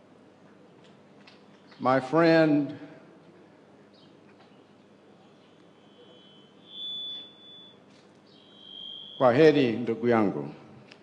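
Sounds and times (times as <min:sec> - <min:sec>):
microphone feedback tone: 0:05.4 - 0:09.6.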